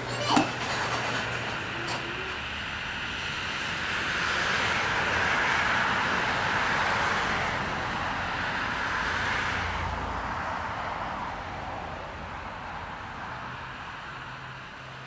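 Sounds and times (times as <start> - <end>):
passing road traffic: 0.0 - 15.0.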